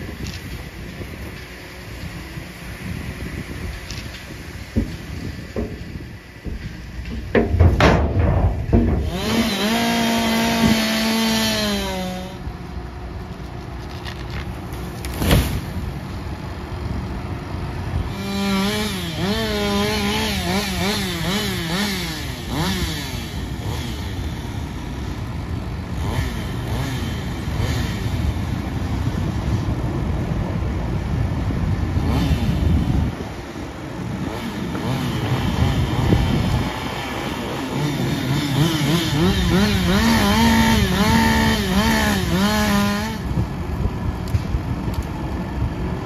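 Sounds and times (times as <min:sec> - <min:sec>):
tractor diesel engine running: 0:00.0 - 0:46.0
chainsaw revving: 0:05.6 - 0:12.5, 0:18.0 - 0:28.4, 0:32.0 - 0:33.1, 0:34.0 - 0:43.5
tree crashing to the ground: 0:13.8 - 0:16.0.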